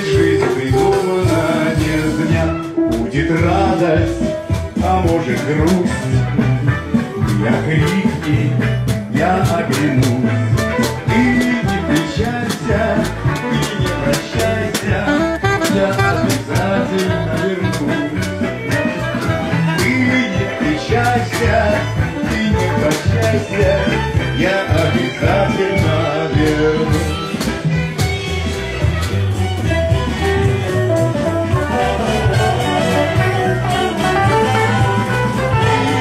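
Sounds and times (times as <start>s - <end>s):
saxophone lead: 0.0s - 3.0s, 10.6s - 20.9s, 23.4s - 36.0s
drum kit beat: 0.0s - 36.0s
electric bass: 0.0s - 36.0s.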